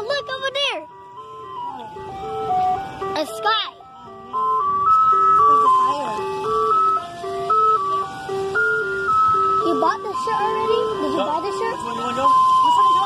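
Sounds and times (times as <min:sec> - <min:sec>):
ice cream truck jingle: 0:00.0 - 0:13.0.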